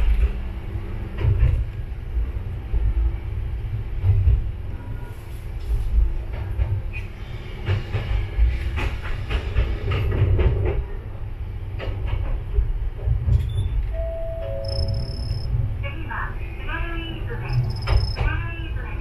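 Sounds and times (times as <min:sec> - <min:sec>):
diesel railcar engine and wheels rumbling: 0:00.0 - 0:19.0.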